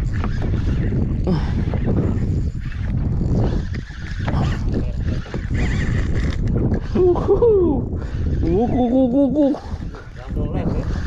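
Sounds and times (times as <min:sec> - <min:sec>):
wind and sea rumble: 0:00.0 - 0:11.0.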